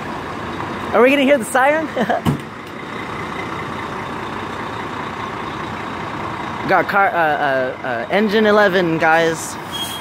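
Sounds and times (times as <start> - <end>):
diesel truck engine running: 0.0 - 10.0.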